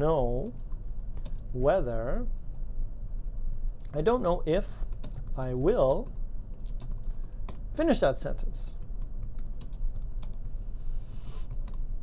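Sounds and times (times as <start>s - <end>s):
steady low hum: 0.0s - 12.0s
keyboard typing: 0.4s - 1.6s, 3.1s - 7.6s, 8.8s - 10.5s, 11.3s - 11.9s.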